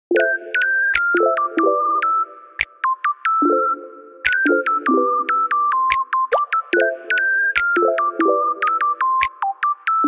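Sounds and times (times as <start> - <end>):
electronic music with synth plucks: 0.1 - 10.0.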